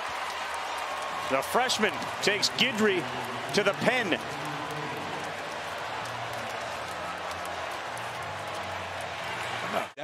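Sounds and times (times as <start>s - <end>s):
crowd cheering: 0.0s - 10.0s.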